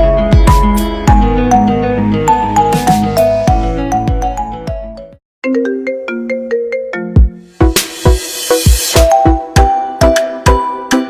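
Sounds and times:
pop ringtone melody: 0.0s - 11.0s.

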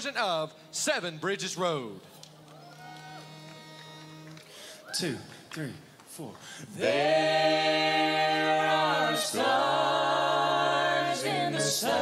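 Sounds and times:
a cappella group singing: 6.6s - 12.0s.

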